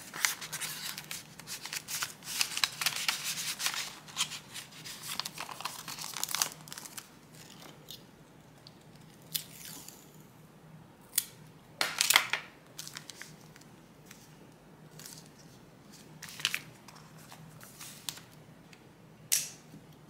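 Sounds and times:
paper rustling and crinkling: 0:00.0 - 0:07.8, 0:12.0 - 0:14.3, 0:14.9 - 0:18.4.

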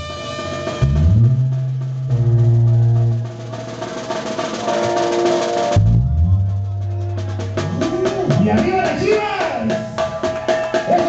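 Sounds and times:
snare drum roll: 0:00.0 - 0:06.0, 0:07.2 - 0:11.0.

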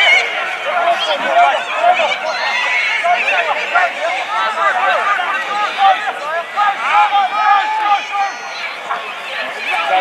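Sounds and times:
men shouting and calling: 0:00.0 - 0:10.0.

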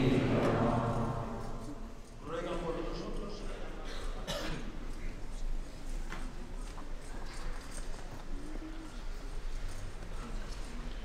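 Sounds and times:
murmur of crowd talking: 0:00.0 - 0:11.0.

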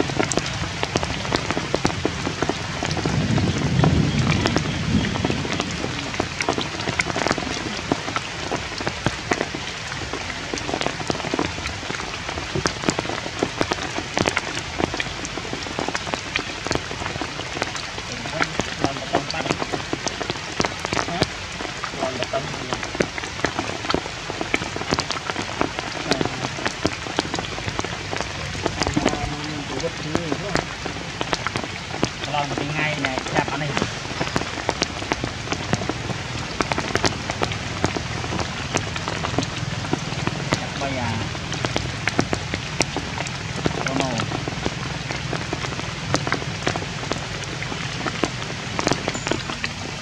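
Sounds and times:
steady rain: 0:00.0 - 0:50.0.

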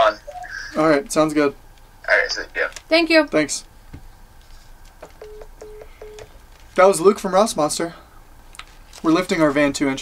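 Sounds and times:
phone call-ended beeps: 0:05.2 - 0:06.3.

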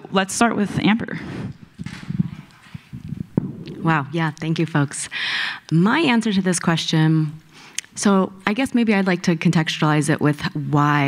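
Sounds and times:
microphone handling rustle: 0:01.1 - 0:04.0.

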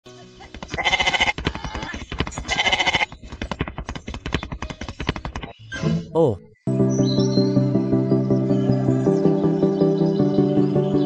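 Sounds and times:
fast steady clicking: 0:00.5 - 0:05.6
drawn-out bleats: 0:00.8 - 0:01.8, 0:02.5 - 0:03.1.

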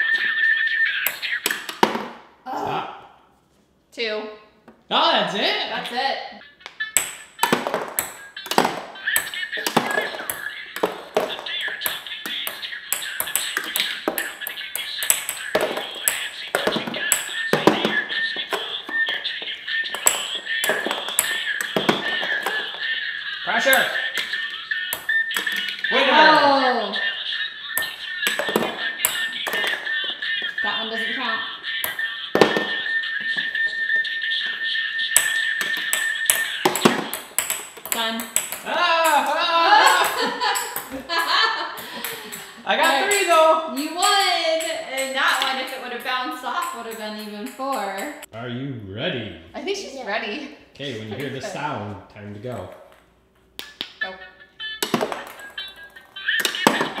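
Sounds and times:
ping pong balls clicking on stone: 0:00.9 - 0:02.2, 0:06.6 - 0:26.4, 0:27.0 - 0:48.3, 0:54.8 - 0:57.0
electronic toy jingle: 0:06.4 - 0:38.4, 0:54.0 - 0:57.0.

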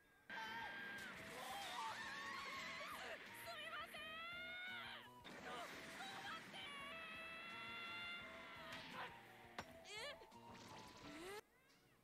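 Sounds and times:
background music: 0:00.0 - 0:11.9.

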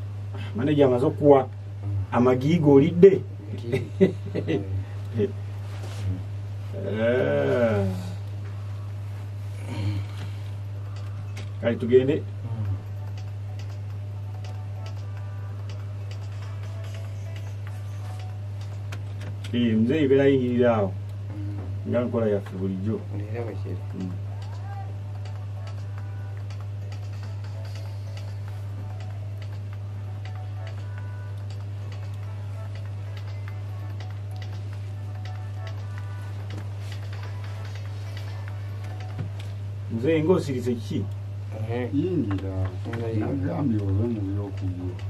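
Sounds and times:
faint music: 0:00.0 - 0:45.0
low electrical hum: 0:00.0 - 0:45.0
faint ticking percussion: 0:10.6 - 0:45.0.

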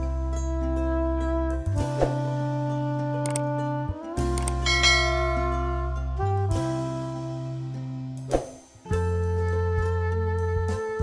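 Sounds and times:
background music: 0:00.0 - 0:11.0
bright bell chime: 0:04.7 - 0:05.7.

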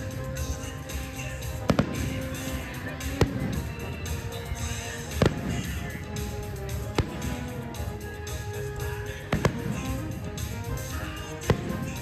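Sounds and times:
music: 0:00.0 - 0:12.0
fireworks bangs: 0:00.3 - 0:12.0.

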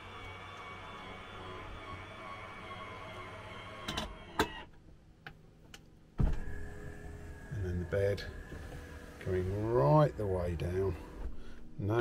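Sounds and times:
electric motor whining: 0:00.0 - 0:04.7, 0:06.3 - 0:11.3.

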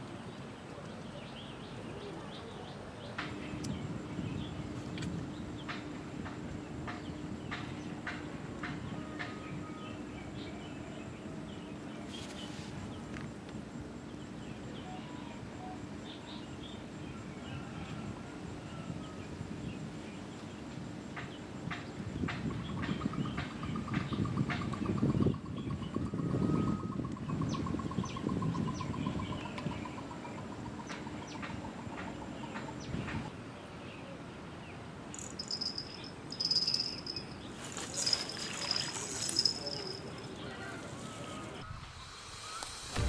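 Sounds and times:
low background hum: 0:00.0 - 0:43.0
bird chirps: 0:35.2 - 0:42.7.

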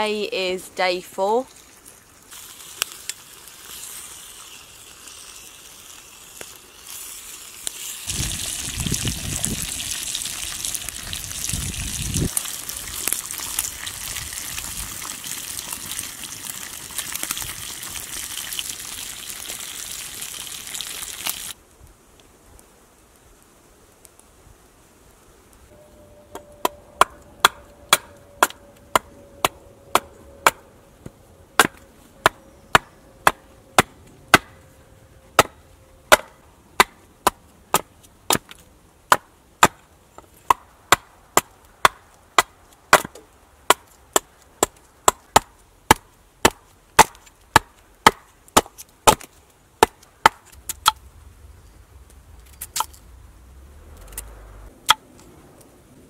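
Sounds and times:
bacon sizzling in a frying pan: 0:01.5 - 0:21.6
chopping strikes into wood: 0:40.5 - 0:51.0.

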